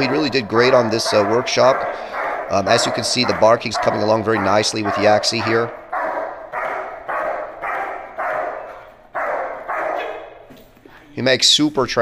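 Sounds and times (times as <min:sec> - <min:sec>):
dog barking loudly: 0:00.0 - 0:10.5.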